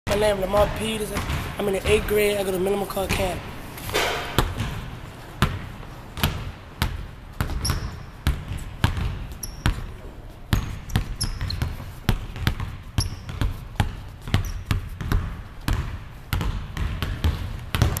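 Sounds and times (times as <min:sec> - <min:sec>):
sneakers squeaking on floor: 0:00.1 - 0:18.0
basketball bouncing on wooden floor: 0:00.2 - 0:18.0.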